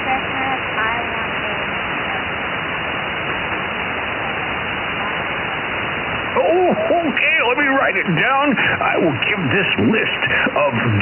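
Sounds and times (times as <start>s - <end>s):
radio static hiss: 0.0s - 11.0s
faint voice on radio: 6.4s - 11.0s.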